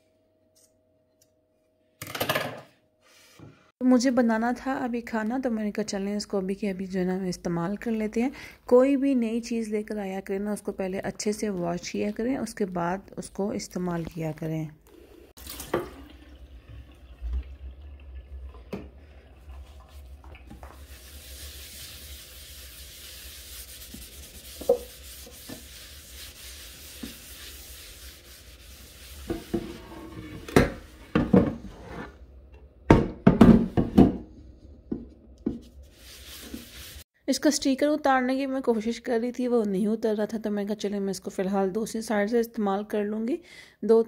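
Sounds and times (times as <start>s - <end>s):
water running: 14.8s - 31.1s, 35.6s - 37.0s
rubbing bowl: 18.1s - 32.2s, 35.5s - 37.0s.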